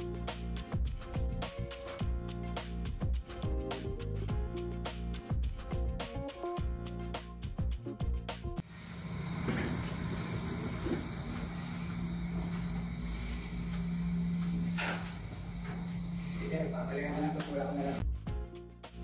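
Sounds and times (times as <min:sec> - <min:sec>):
steady low hum: 0:08.6 - 0:18.0.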